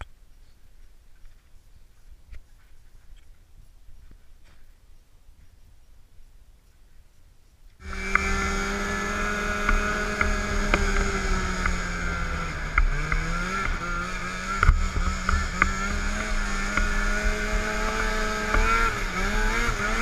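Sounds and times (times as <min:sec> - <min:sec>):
snowmobile engine running: 0:07.8 - 0:20.0.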